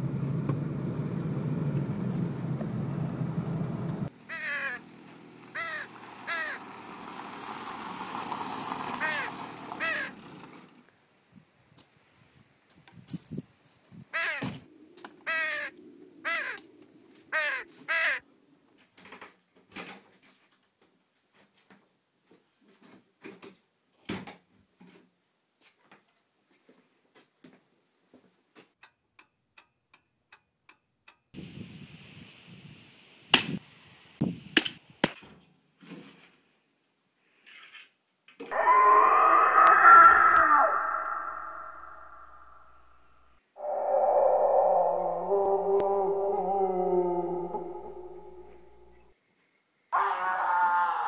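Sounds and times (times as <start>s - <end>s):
crow cawing: 4.3s - 4.8s, 5.6s - 6.6s, 9.0s - 10.1s, 14.2s - 14.5s, 15.2s - 16.6s, 17.3s - 18.2s, 38.5s - 43.0s, 43.6s - 49.0s, 50.0s - 51.0s
eerie layered horror tone: 38.5s - 42.9s, 43.6s - 49.0s.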